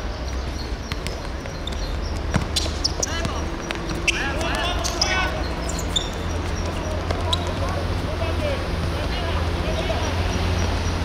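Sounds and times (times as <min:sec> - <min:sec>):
players calling out: 0:00.3 - 0:11.0
football ball strikes: 0:00.8 - 0:05.2.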